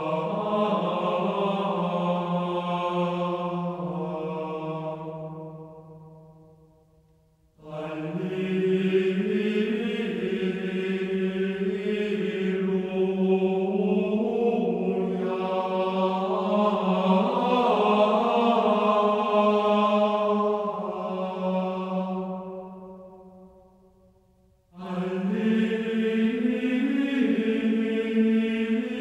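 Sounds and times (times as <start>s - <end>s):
chant-like singing: 0.0s - 6.5s, 7.6s - 23.7s, 24.7s - 29.0s.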